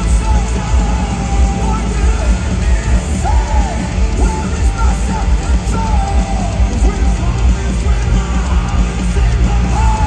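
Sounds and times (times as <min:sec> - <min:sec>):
lead vocal singing: 0:00.0 - 0:10.0
live rock band playing: 0:00.0 - 0:10.0.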